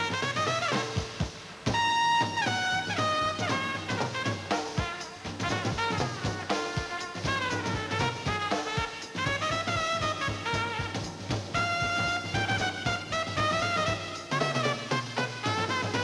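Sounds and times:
drum kit: 0.0s - 16.0s
solo trumpet playing swing: 0.0s - 16.0s.

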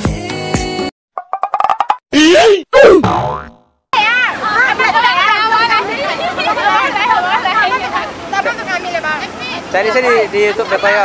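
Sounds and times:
springy boing sound effect: 3.0s - 3.7s.

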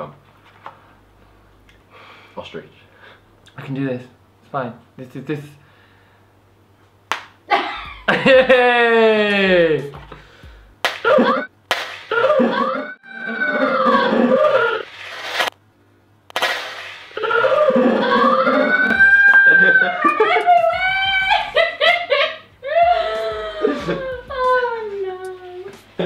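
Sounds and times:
men shrieking and laughing: 7.5s - 9.9s, 12.1s - 14.8s, 17.2s - 24.8s.

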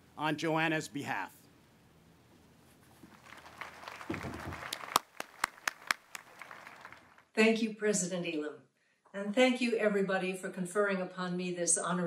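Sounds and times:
sharp hand claps: 3.1s - 7.2s
audience applause: 3.1s - 7.3s.

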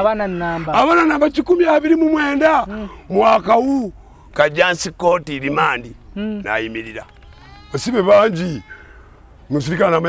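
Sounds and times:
man speaking: 0.0s - 7.1s, 7.7s - 8.7s.

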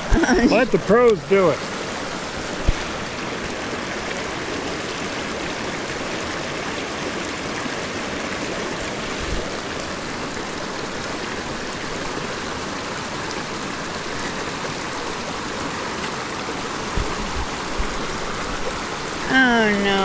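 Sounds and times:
creek running over rocks: 0.0s - 20.0s.

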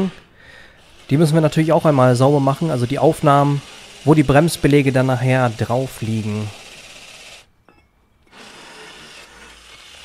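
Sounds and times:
drill spinning wire brush on metal: 0.8s - 7.5s, 8.2s - 10.0s.

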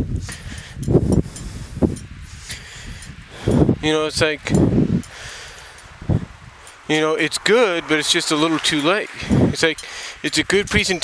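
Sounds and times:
wind buffeting microphone: 0.0s - 11.0s
faint hiss: 0.2s - 11.0s
man's voice: 6.9s - 11.0s.

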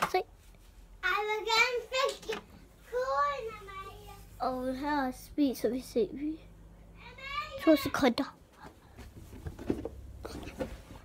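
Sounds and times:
child's voice: 1.0s - 8.4s.

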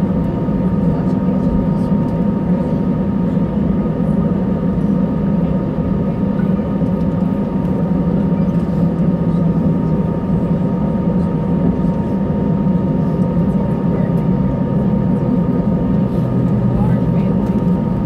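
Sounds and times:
jet engines idling hum: 0.0s - 18.0s.

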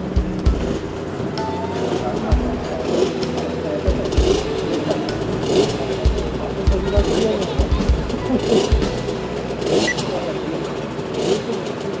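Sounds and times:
motocross bike engines revving: 0.0s - 12.0s.

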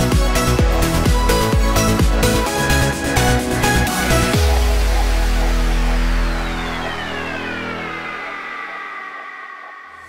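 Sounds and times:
bass: 0.0s - 10.0s
synthesized downward sweep: 0.0s - 10.0s.

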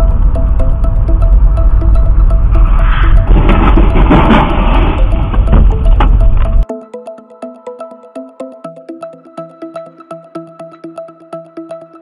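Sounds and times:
rumbling road noise: 0.0s - 6.6s
electronic music with ticking beat: 0.0s - 12.0s.

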